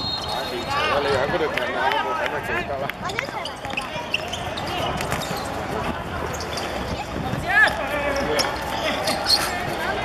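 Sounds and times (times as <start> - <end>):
players' voices: 0.1 - 10.0.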